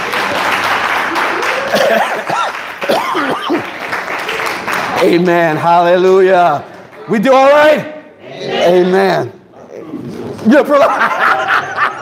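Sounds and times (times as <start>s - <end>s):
applause: 0.0s - 7.1s.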